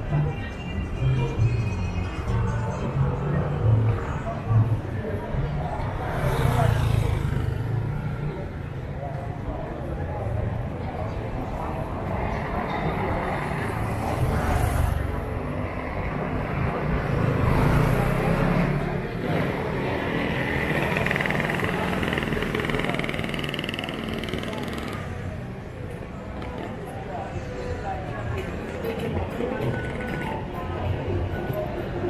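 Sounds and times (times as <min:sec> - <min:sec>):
traffic running by: 0:00.0 - 0:32.0.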